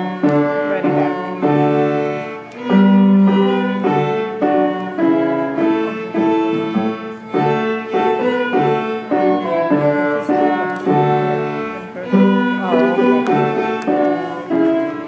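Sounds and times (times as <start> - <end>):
piano accompaniment: 0.0 - 15.0
solo violin melody: 0.0 - 15.0.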